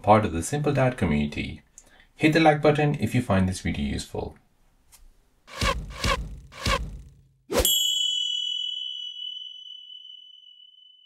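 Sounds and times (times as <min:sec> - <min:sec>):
bright bell-like ding: 0:07.6 - 0:11.0.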